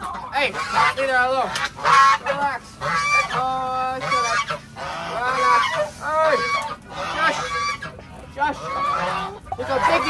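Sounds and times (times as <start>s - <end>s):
geese honking: 0.0s - 10.0s.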